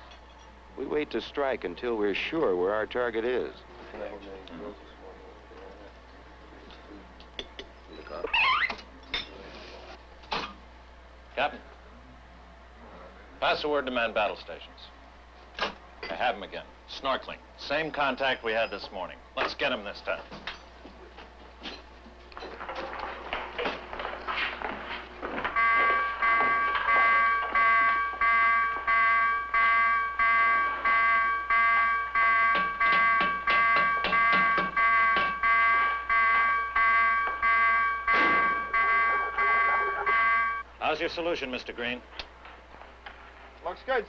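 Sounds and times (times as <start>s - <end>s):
clatter of men moving: 20.2s - 28.2s
pulsed ringing electric alarm: 25.2s - 40.7s.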